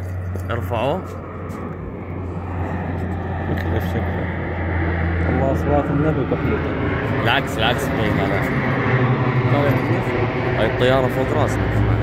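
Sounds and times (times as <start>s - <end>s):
airplane drone overhead: 0.0s - 12.0s.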